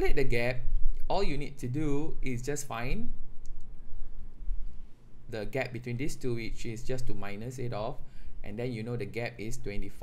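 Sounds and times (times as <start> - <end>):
steady low hum: 0.0 - 10.0
faint short clicks: 3.4 - 3.8.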